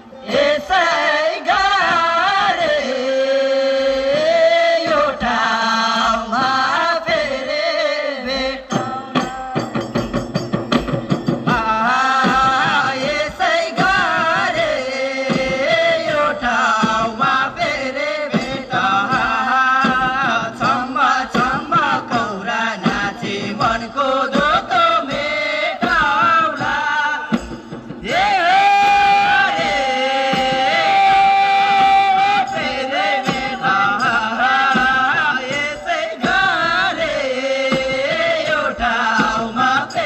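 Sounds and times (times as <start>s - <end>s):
voices singing folk song: 0.0s - 10.2s, 11.3s - 40.0s
faint low drum beats: 0.2s - 40.0s.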